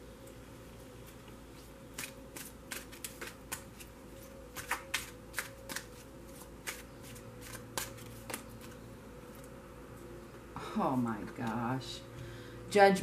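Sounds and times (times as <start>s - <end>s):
cards being shuffled: 1.1s - 9.5s.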